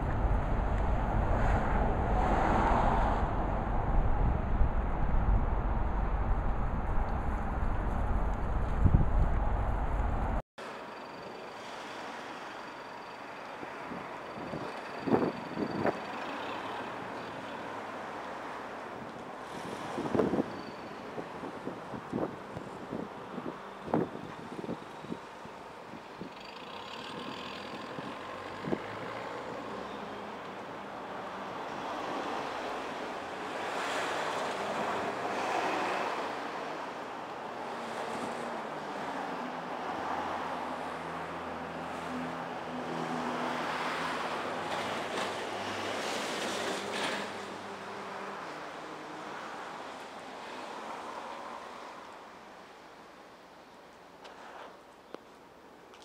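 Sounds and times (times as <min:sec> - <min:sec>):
vehicle passing: 0:00.0 - 0:10.4
tyres hissing on wet road: 0:11.4 - 0:14.1, 0:19.3 - 0:21.4, 0:43.0 - 0:52.7.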